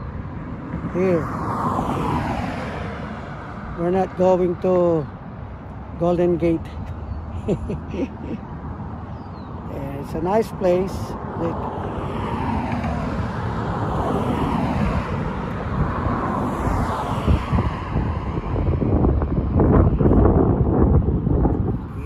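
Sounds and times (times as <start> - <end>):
road traffic passing: 0.0 - 22.0
wind buffeting microphone: 0.0 - 22.0.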